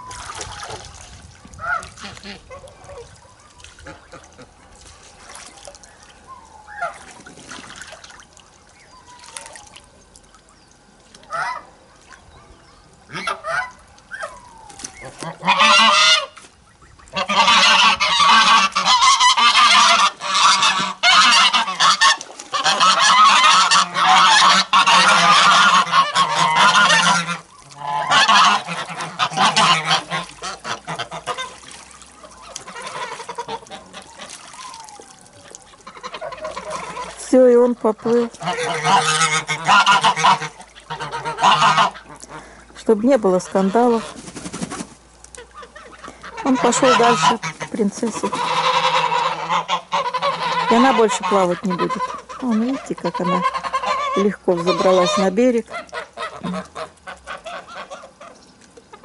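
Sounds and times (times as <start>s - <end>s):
geese honking: 11.3s - 11.7s, 13.1s - 42.6s, 43.2s - 44.2s, 45.4s - 59.0s.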